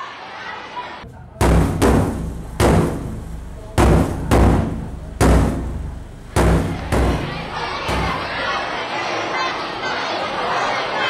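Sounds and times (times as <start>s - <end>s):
deep booming percussion hits: 1.4s - 8.4s.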